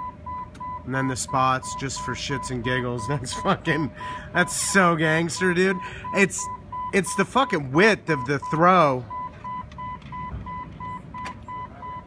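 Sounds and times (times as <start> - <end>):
dashboard warning chime beeping: 0.0 - 12.0.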